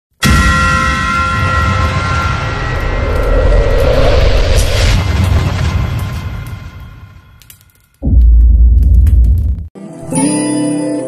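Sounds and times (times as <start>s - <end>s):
low rumble: 1.1s - 9.5s
whooshing swell: 2.2s - 6.9s.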